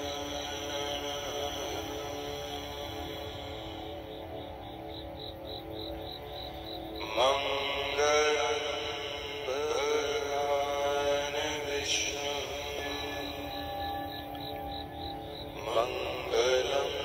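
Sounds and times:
steady drone: 0:00.0 - 0:17.0
wordless chanting voice: 0:00.0 - 0:17.0.

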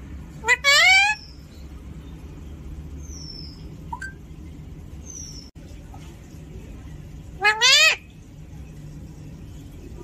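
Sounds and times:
parakeet calling: 0:00.3 - 0:02.2, 0:02.9 - 0:04.3, 0:05.0 - 0:05.5, 0:07.4 - 0:08.2.

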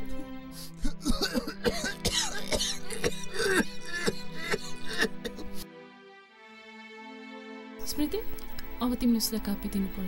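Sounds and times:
background music: 0:00.0 - 0:10.0
man coughing: 0:01.0 - 0:05.6.

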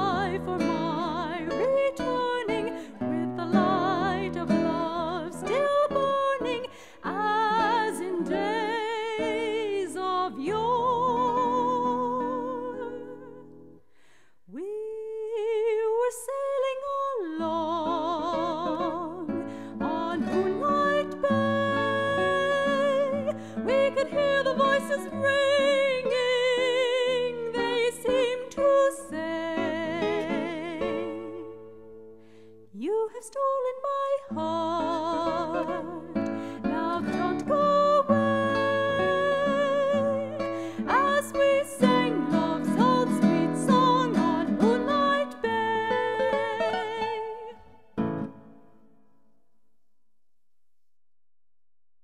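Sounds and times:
soprano singing with vibrato: 0:00.0 - 0:13.7, 0:14.5 - 0:31.9, 0:32.7 - 0:48.6
plucked guitar: 0:00.0 - 0:13.8, 0:17.4 - 0:32.6, 0:33.8 - 0:49.0
singer breathing: 0:06.7 - 0:07.1, 0:13.8 - 0:14.5, 0:19.4 - 0:19.8, 0:32.1 - 0:32.7, 0:36.3 - 0:36.7, 0:40.4 - 0:40.9.

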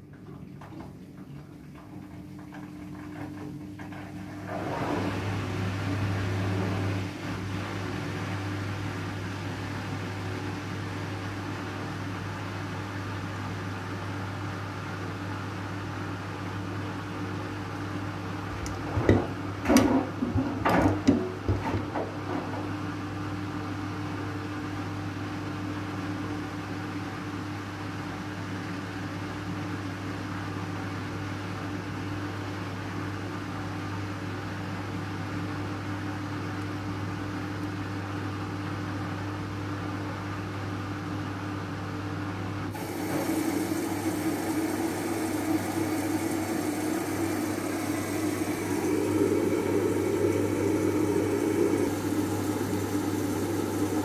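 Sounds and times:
washing machine motor humming: 0:00.0 - 0:25.0, 0:42.2 - 0:54.0
wet laundry knocking in drum: 0:18.9 - 0:22.8.

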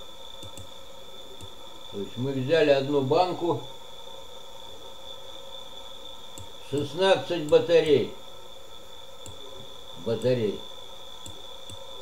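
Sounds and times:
faint electrical hum: 0:00.0 - 0:12.0
high-pitched electrical whine: 0:00.0 - 0:12.0.

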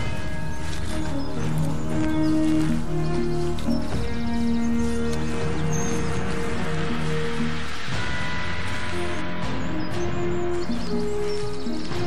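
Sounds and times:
sustained music chords: 0:00.0 - 0:12.0.

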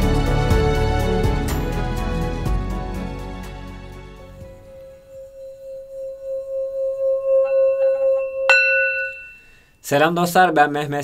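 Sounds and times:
singing bowl struck: 0:04.4 - 0:09.7
singing bowl ringing: 0:04.4 - 0:09.8.

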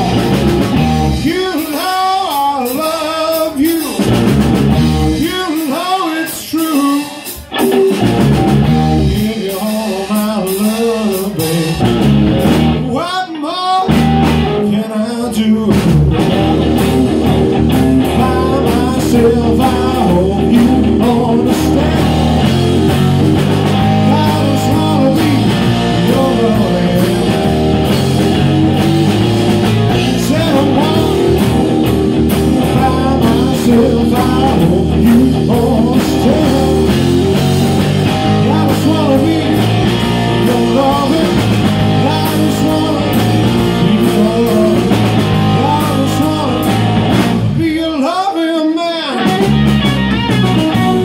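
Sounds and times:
lead electric guitar bent notes: 0:00.0 - 0:01.6, 0:04.0 - 0:05.3, 0:07.3 - 0:09.5, 0:11.0 - 0:13.0, 0:13.8 - 0:14.9, 0:15.7 - 0:47.6, 0:49.2 - 0:51.0
live electric blues band: 0:00.0 - 0:51.0.

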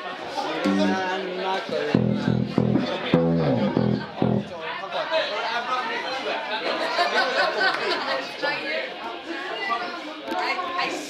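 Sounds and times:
room chatter: 0:00.0 - 0:11.0
plucked bass guitar notes: 0:00.6 - 0:01.2, 0:01.9 - 0:04.6.

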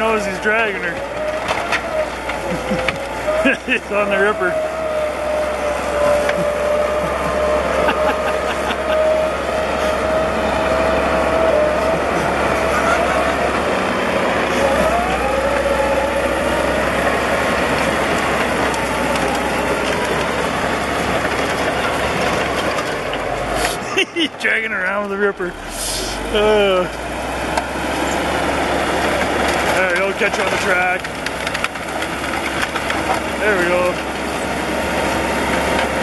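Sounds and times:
steady whine: 0:00.0 - 0:31.6
diesel engine under load: 0:00.0 - 0:36.0
steel tracks clanking: 0:00.0 - 0:36.0.

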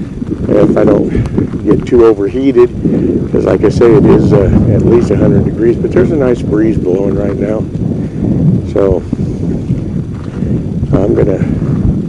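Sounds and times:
footsteps on gravel: 0:00.0 - 0:04.0, 0:09.0 - 0:11.4
wind buffeting microphone: 0:00.0 - 0:12.0.

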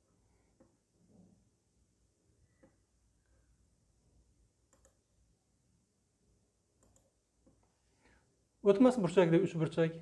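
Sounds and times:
computer mouse clicks: 0:04.7 - 0:05.0, 0:06.8 - 0:07.6.

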